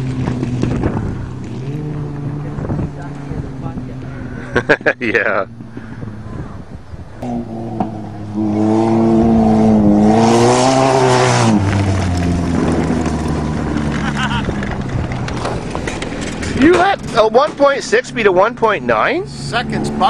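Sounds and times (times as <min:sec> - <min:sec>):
car engine revving: 0:00.0 - 0:20.0
tyres on dirt: 0:00.0 - 0:20.0.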